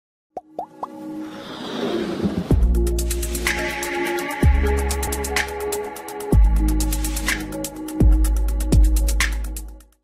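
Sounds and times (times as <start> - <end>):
electronic music build: 0.4 - 9.8.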